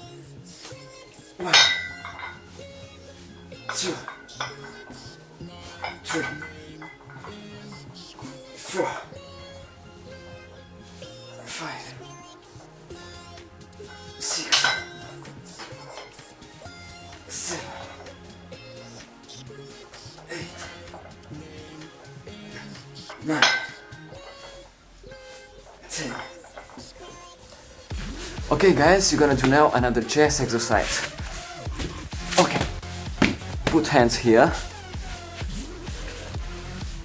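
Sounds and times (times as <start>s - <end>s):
background music: 0.0s - 37.0s
metal dumbbell plates clinking: 1.4s - 2.6s, 3.7s - 8.9s, 14.2s - 16.2s, 20.4s - 24.6s, 25.9s - 27.0s.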